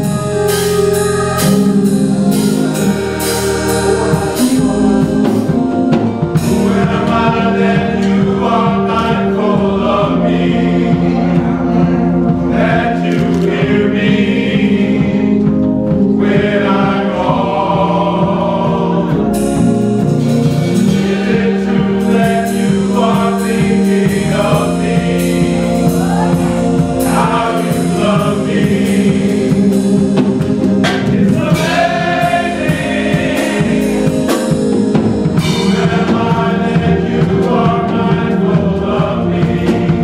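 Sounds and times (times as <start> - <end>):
instrumental accompaniment: 0.0 - 40.0
men's choir singing in harmony: 0.0 - 40.0
percussion beat: 19.4 - 40.0.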